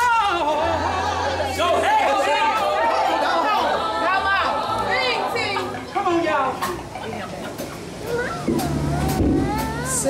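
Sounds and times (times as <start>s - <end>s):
voices singing gospel: 0.0s - 8.0s
congregation voices: 0.0s - 10.0s
band with low bass: 7.9s - 10.0s.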